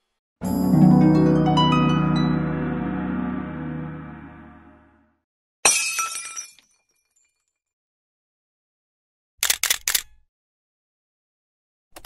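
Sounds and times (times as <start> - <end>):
glass shattering: 5.6 - 7.4.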